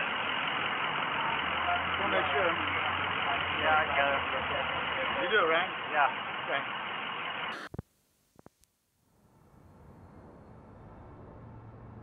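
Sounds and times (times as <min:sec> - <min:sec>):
vehicle engine idling: 0:00.0 - 0:07.6
street noise: 0:00.0 - 0:07.8, 0:09.2 - 0:12.0.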